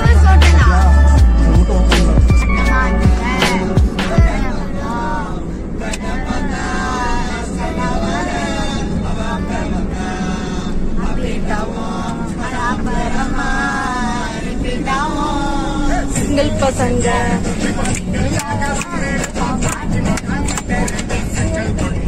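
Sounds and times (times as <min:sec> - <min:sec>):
children singing: 0:00.0 - 0:21.9
car low rumble: 0:00.0 - 0:22.0.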